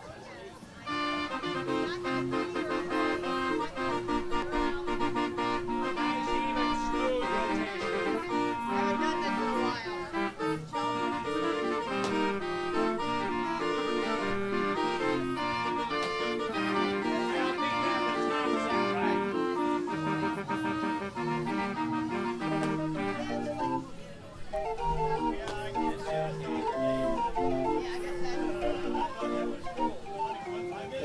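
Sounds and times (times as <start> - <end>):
street organ playing a tune: 0.6 - 31.0.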